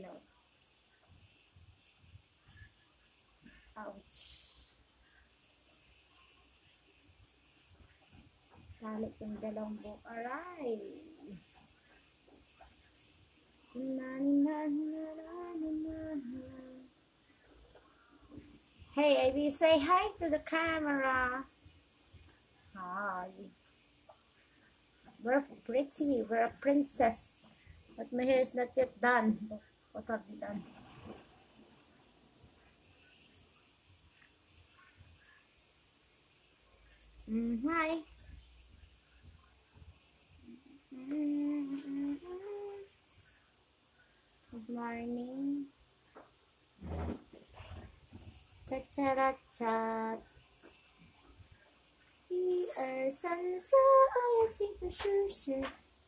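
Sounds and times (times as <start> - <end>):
person humming: 13.7 - 16.9, 37.3 - 37.9, 40.9 - 42.9
high voice singing wordlessly: 13.7 - 17.0, 19.0 - 21.5, 37.2 - 38.2, 40.9 - 42.9, 52.3 - 55.8.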